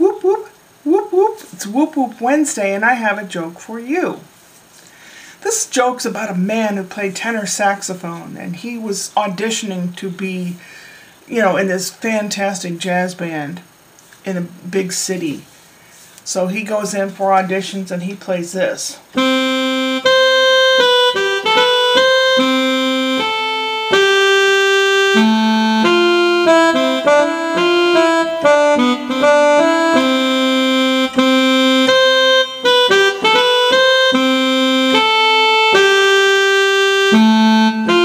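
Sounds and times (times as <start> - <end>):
electronic keyboard saxophone tune: 19.2 - 38.0.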